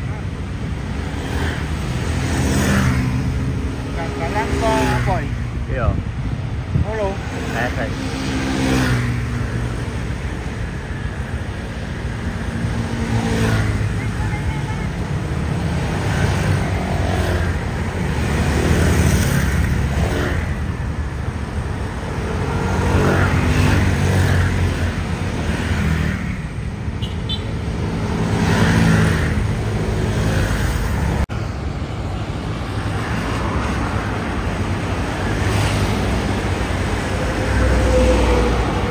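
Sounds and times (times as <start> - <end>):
scooters and motorcycles passing: 0.0 - 5.6, 7.0 - 38.9
cars passing: 0.0 - 38.9.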